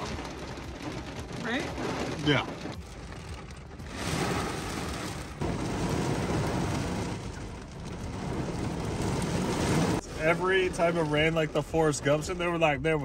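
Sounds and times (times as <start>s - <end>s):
heavy rain on car roof: 0.0s - 13.0s.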